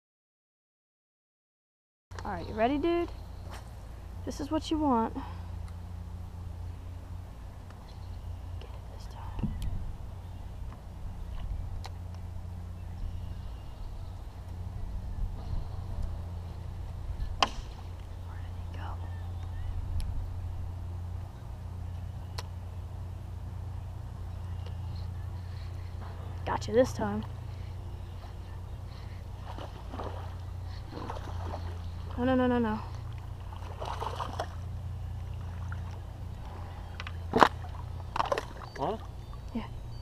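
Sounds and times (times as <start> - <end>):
steady low hum: 2.1 - 40.0.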